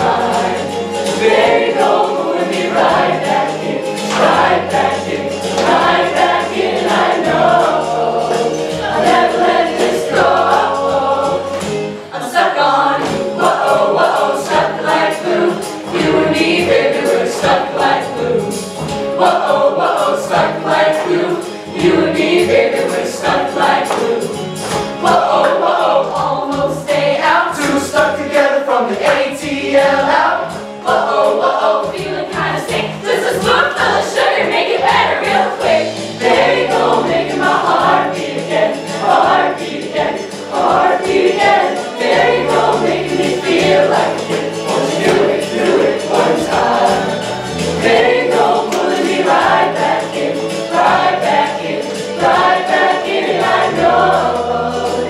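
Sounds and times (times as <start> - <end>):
choir singing upbeat song: 0.0 - 55.0.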